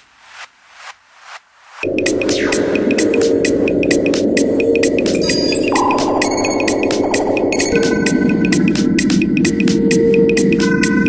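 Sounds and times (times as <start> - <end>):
droning low synth: 1.8 - 11.0.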